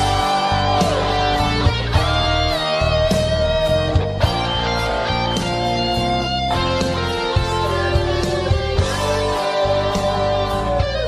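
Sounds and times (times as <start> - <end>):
slow rock ballad instrumental: 0.0 - 11.0.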